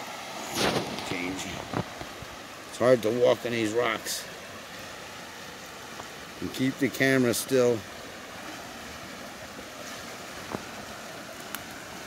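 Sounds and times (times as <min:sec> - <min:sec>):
river rapids rushing: 0:00.0 - 0:12.0.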